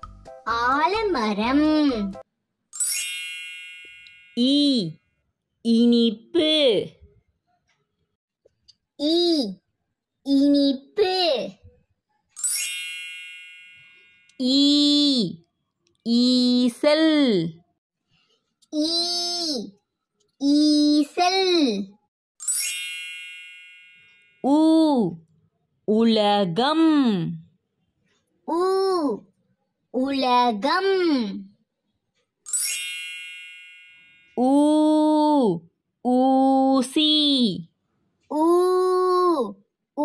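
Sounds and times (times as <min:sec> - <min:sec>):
bright chime: 0:22.4 - 0:24.3.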